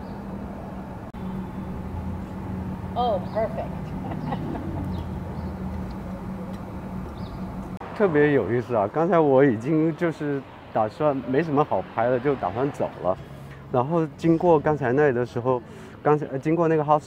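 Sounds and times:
steady low street hum: 0:00.0 - 0:17.0.

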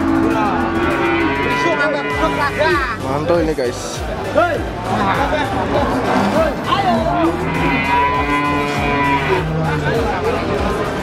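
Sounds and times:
cow mooing: 0:00.0 - 0:03.0, 0:05.8 - 0:10.0.

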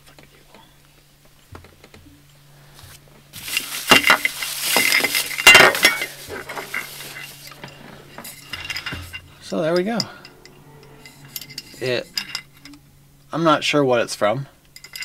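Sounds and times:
plastic wrapping crinkling and tearing: 0:03.4 - 0:07.6
bottle handling clicks and clinks: 0:03.4 - 0:09.2.

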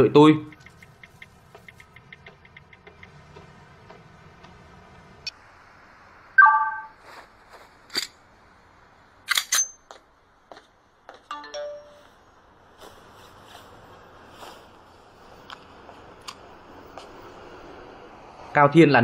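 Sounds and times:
sharp clicks: 0:00.4 - 0:03.4
phone electronic beeps: 0:06.4 - 0:07.0.

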